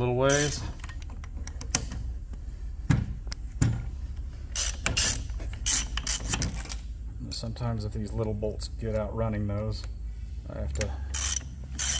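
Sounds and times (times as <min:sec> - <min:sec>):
socket ratchet clicking: 0:04.5 - 0:06.8, 0:11.1 - 0:11.9.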